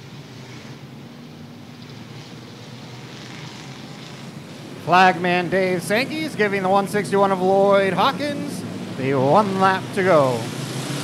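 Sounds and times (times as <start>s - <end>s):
distant race car engines droning: 0.0s - 11.0s.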